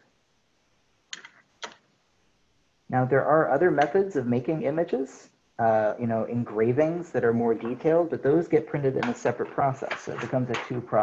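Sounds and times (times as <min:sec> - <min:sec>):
wooden blocks clicking on table: 0:01.1 - 0:01.8, 0:09.0 - 0:10.8.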